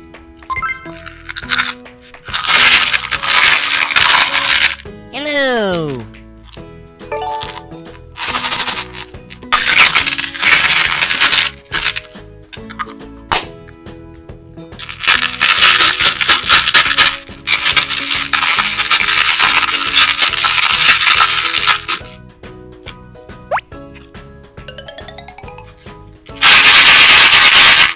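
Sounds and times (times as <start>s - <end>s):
hard candies rattling in plastic: 0.9s - 4.9s, 8.2s - 13.0s, 14.8s - 22.2s, 26.4s - 27.9s.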